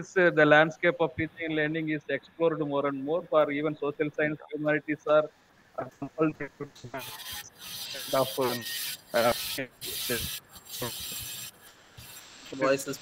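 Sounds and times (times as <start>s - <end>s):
earphone microphone rubbing: 7.0s - 12.2s.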